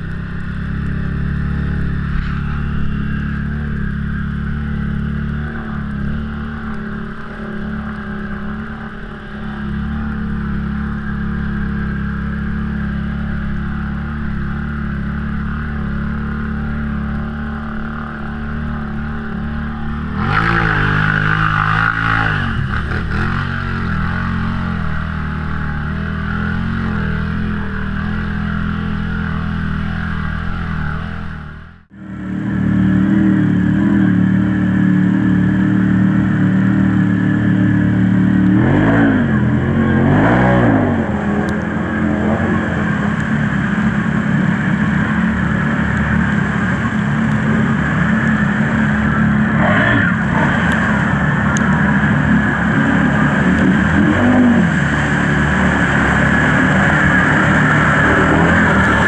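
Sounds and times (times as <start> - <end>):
atv engine droning in water: 0.0 - 59.0.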